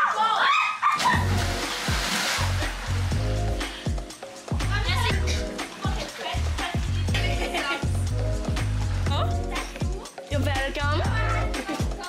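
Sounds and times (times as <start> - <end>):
splash into pool: 0.9 - 3.2
water churning: 1.0 - 10.2
music with bass beat: 1.2 - 12.0.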